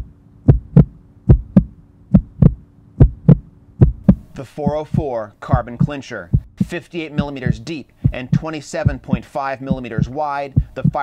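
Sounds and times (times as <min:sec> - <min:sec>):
faint steady hum: 0:00.0 - 0:11.0
heartbeat-like double thumps: 0:00.0 - 0:11.0.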